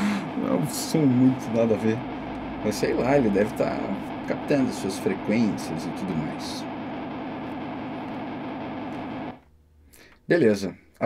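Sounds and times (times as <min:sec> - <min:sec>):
harsh warbling buzz: 0:00.0 - 0:09.4.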